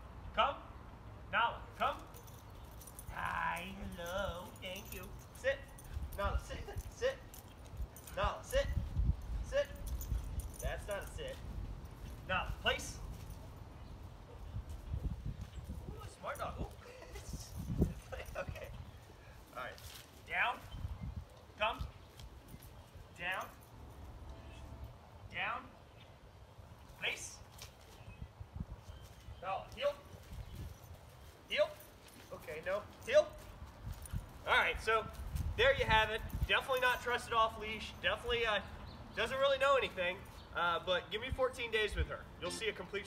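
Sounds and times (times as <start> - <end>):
metal collar tags jingling: 1.8 - 13.9, 16.2 - 20.8, 22.0 - 24.9, 30.2 - 39.0.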